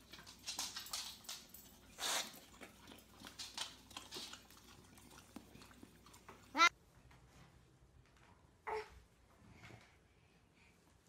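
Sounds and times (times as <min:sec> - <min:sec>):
dog licking lips: 0:01.6 - 0:06.6.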